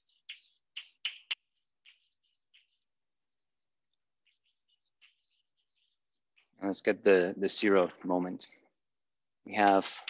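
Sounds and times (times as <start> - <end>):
chalk tapping: 0.0 - 6.6
chalk scratching on blackboard: 0.0 - 6.7.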